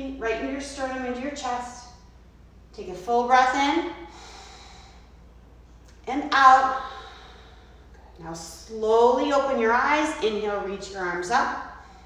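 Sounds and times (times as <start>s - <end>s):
person inhaling: 4.0s - 5.2s, 6.7s - 8.0s.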